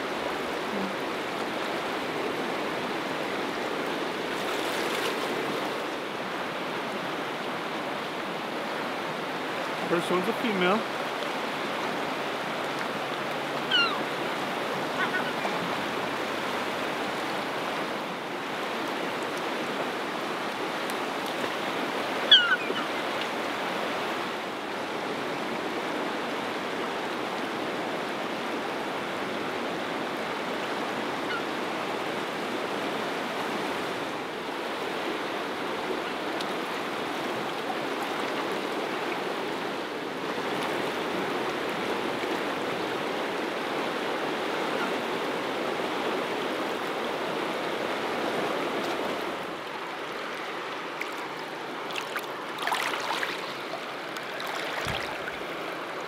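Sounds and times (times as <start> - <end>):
river rushing over stones: 0.0 - 56.0
gull calling: 13.6 - 14.2, 14.8 - 15.9, 22.2 - 23.1, 31.2 - 31.5.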